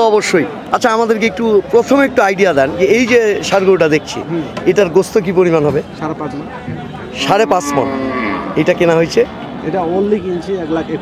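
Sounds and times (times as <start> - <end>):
men talking: 0.0 - 11.0
cattle mooing: 7.1 - 9.0.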